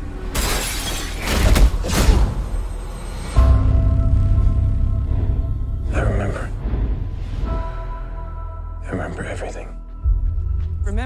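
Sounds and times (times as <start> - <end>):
glass shattering: 0.3 - 2.1.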